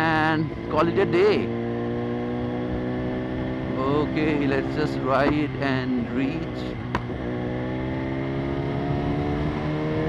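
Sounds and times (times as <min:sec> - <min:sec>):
motorcycle engine at steady revs: 0:00.0 - 0:10.0.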